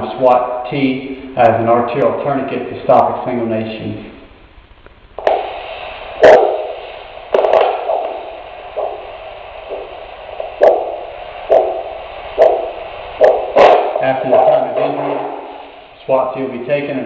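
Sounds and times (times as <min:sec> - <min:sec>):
whooshing doppler pulse beat: 0:05.2 - 0:16.0.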